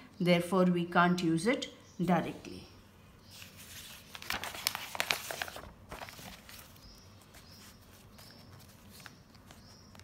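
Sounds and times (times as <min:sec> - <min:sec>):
paper pages rustling: 0:03.3 - 0:10.0.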